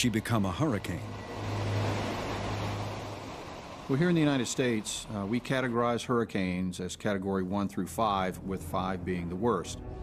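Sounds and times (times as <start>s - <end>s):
steady rushing noise: 0.0s - 6.6s
low hum: 0.0s - 10.0s.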